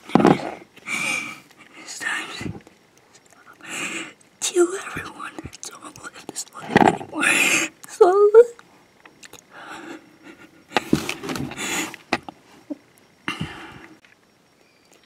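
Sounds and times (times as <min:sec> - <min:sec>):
heavy breathing: 0:00.2 - 0:02.6, 0:03.5 - 0:04.2, 0:09.5 - 0:14.0
boy whispering: 0:01.8 - 0:02.6, 0:04.4 - 0:08.6.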